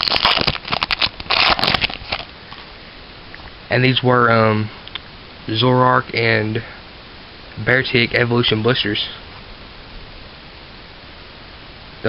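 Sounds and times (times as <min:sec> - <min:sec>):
foil wrapper crinkling: 0:00.0 - 0:02.7.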